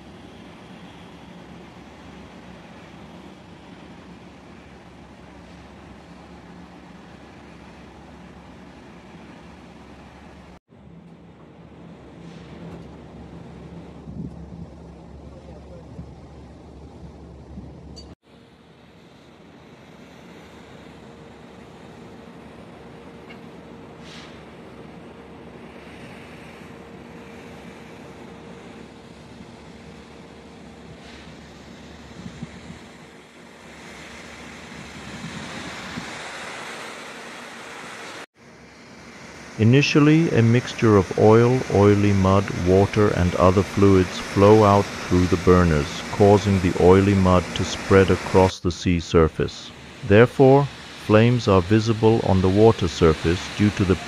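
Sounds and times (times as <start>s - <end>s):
low machinery hum: 0.0s - 54.0s
wind on microphone: 13.9s - 18.0s, 32.1s - 32.9s, 34.6s - 36.3s
rushing water spray: 23.9s - 54.0s.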